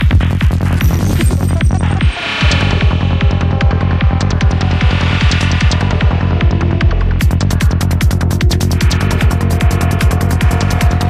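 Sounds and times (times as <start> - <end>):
kick drum: 0.0 - 9.4
hi-hats: 0.0 - 11.0
rolling bassline: 0.0 - 11.0.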